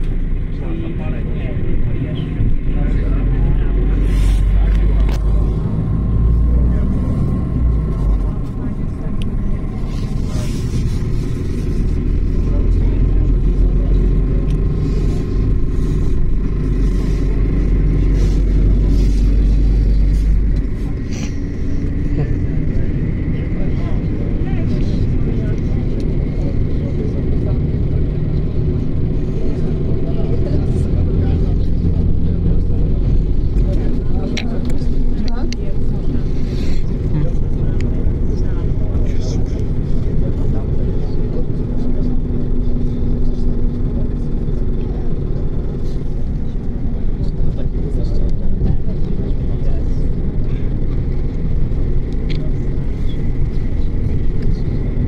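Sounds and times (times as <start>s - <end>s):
diesel engine drone: 0.0s - 55.0s
road and tyre noise: 0.0s - 55.0s.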